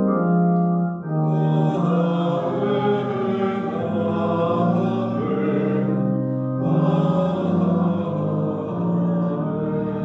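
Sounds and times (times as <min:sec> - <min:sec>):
organ: 0:00.0 - 0:10.0
voices singing chant: 0:01.2 - 0:10.0.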